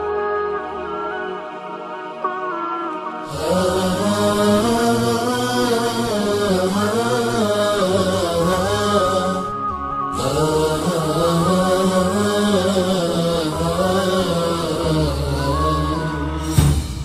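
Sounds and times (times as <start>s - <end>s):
steady low drone: 3.3s - 17.0s.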